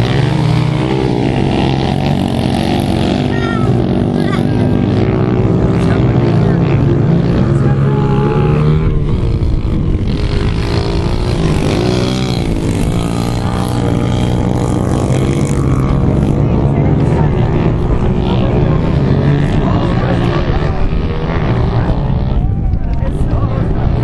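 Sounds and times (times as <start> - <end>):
pit bike engines racing: 0.0 - 24.0.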